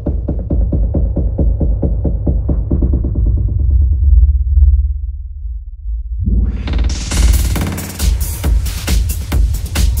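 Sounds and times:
techno music: 6.4 - 10.0.

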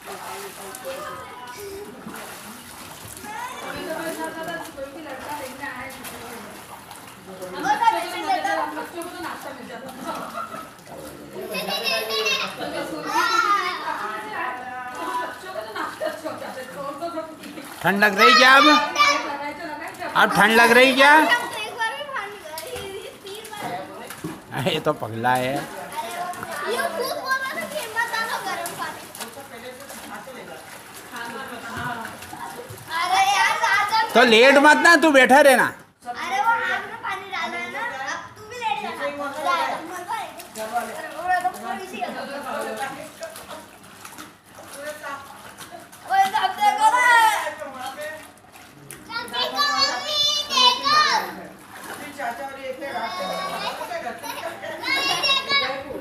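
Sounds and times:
children calling and chattering: 0.0 - 56.0
water splashing: 0.0 - 56.0.

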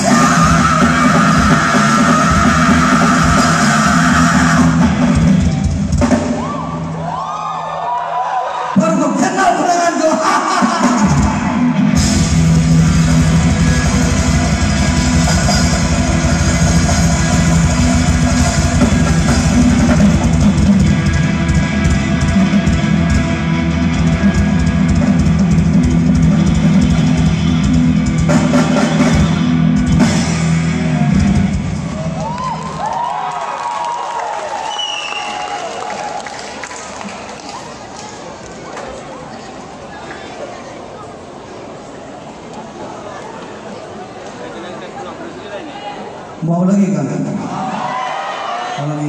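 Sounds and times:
live rock band playing: 0.0 - 7.0, 10.6 - 32.7.

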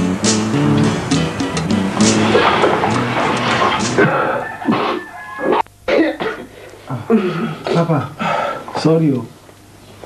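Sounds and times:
man making throat sounds: 0.2 - 1.3.

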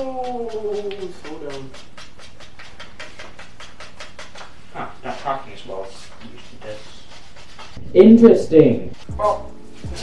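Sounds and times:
chalk scraping on cue tip: 0.3 - 7.8.

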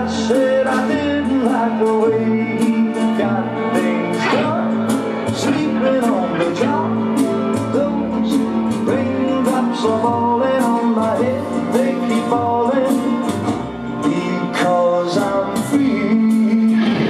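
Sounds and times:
live rock band playing: 0.0 - 17.0.

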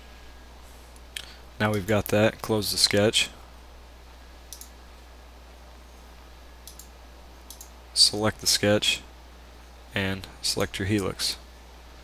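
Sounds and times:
faint low hum: 0.0 - 12.0
computer mouse clicking: 4.5 - 4.8, 6.6 - 7.7.

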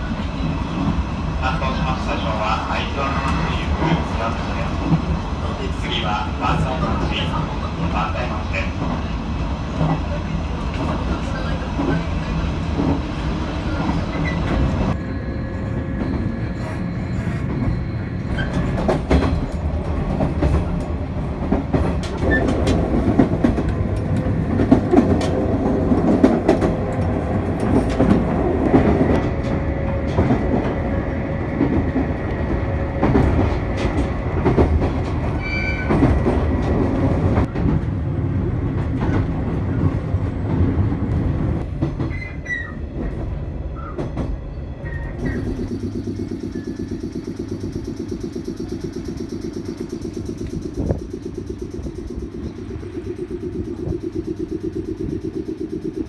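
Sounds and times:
train car low rumble: 0.0 - 56.0
air compressor chugging: 45.4 - 56.0.

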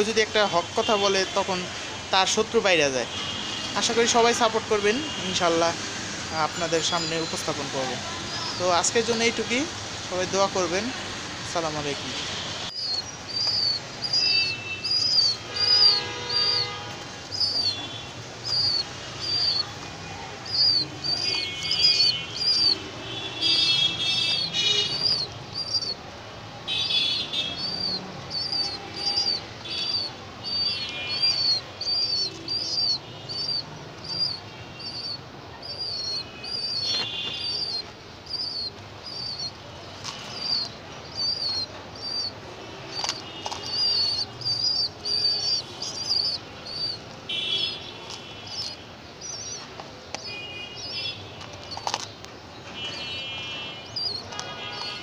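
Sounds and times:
other birds calling: 11.5 - 26.1, 26.7 - 55.0
bird chirping: 12.6 - 19.8, 20.4 - 26.0, 26.7 - 53.1, 53.8 - 55.0.

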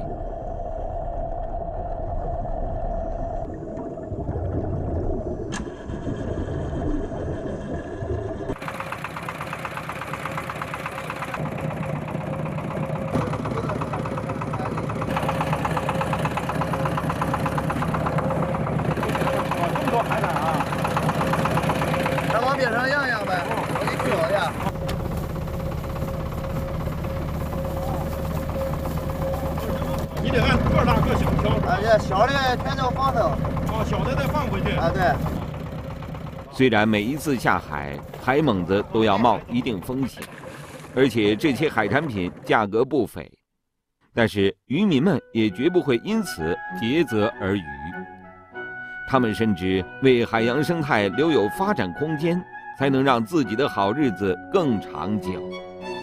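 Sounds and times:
water noise: 0.0 - 42.5
boat engine idling: 5.5 - 42.6
muffled underwater sound: 16.3 - 35.5.

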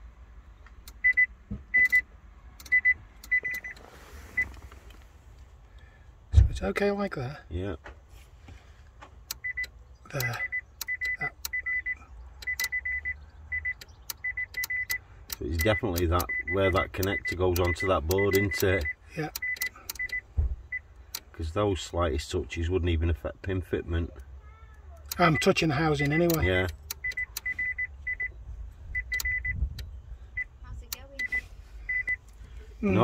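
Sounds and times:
sharp clicks: 0.6 - 2.0, 2.6 - 3.8, 9.0 - 11.8, 12.4 - 20.2, 25.0 - 28.2, 29.0 - 30.0
rapid high-pitched warning beeps: 2.7 - 3.8, 9.4 - 15.0, 15.6 - 20.9, 25.2 - 28.4, 29.0 - 29.6, 30.3 - 32.2.

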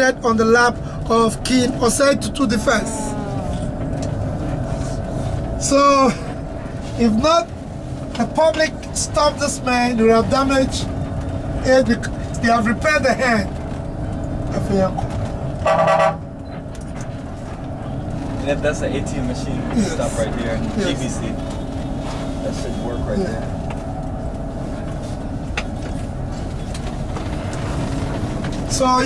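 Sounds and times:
bus engine rumble: 0.0 - 29.0
faint hum: 0.7 - 8.4
vehicle horn: 15.6 - 16.3.

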